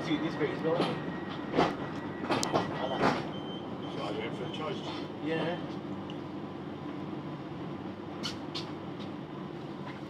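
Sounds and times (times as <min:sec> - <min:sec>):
metallic clacks of train wheels: 0:00.0 - 0:03.4
train rumble: 0:00.0 - 0:10.0.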